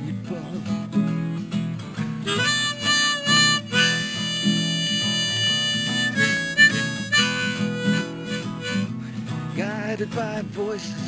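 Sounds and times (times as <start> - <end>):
strummed acoustic guitar: 0.0 - 11.0
harmonica playing: 2.2 - 9.0.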